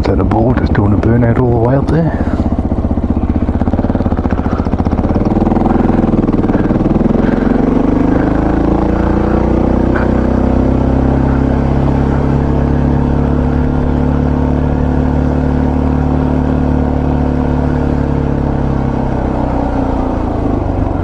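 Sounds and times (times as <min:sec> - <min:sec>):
motorcycle engine under load: 0:00.0 - 0:21.0.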